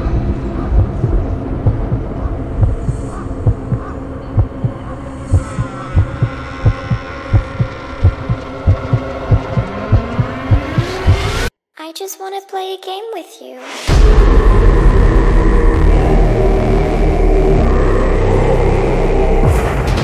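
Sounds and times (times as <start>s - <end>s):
droning hum: 0.0s - 10.6s
heartbeat-like thumps: 0.5s - 11.5s
rising tone: 4.4s - 11.5s.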